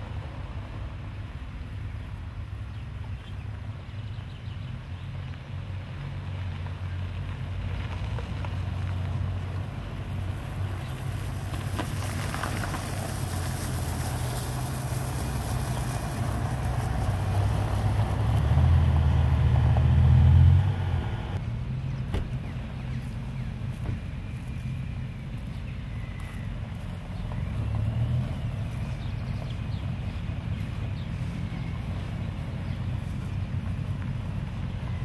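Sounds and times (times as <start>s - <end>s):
sports car engines running: 0.0s - 35.0s
tyres crunching on gravel: 5.2s - 20.7s, 21.3s - 35.0s.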